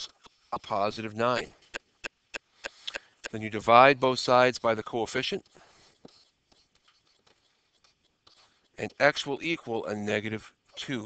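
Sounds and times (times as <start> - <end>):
stylus scratching on tablet screen: 0.0 - 3.4, 4.9 - 9.9.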